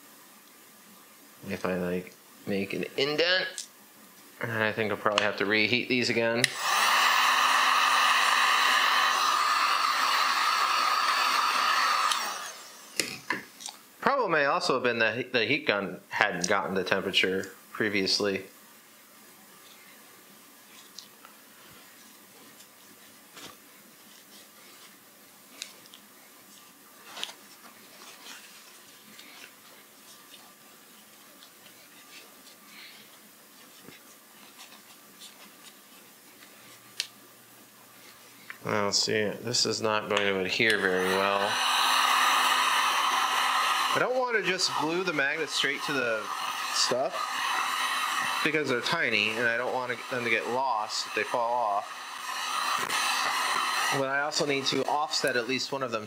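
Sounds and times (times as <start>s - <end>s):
heat gun blowing air: 6.4s - 13.4s, 40.2s - 56.0s
paper towel crinkling: 20.6s - 37.0s.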